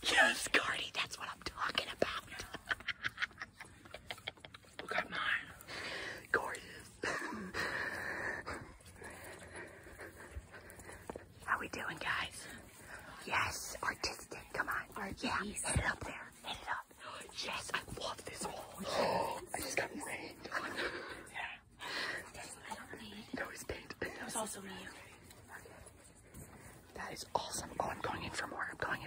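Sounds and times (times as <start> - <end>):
breathy whispering: 0.0 - 2.7, 4.8 - 29.0.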